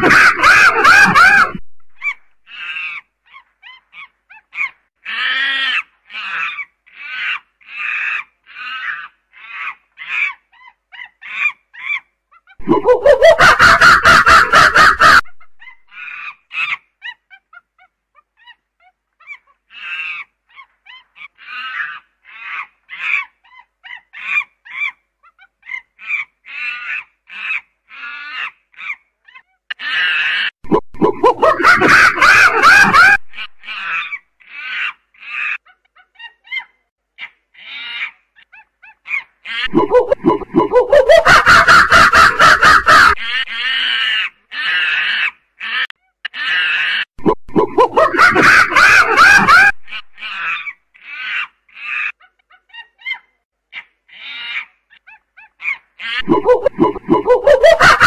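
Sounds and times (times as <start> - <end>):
primate screaming: 0.0 - 3.1, 29.7 - 35.6, 39.4 - 52.2, 56.0 - 58.0
primate hooting: 39.6 - 43.5, 56.2 - 58.0.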